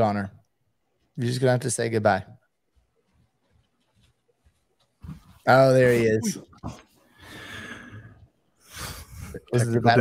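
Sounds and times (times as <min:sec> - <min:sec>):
person breathing out: 0:07.2 - 0:09.3.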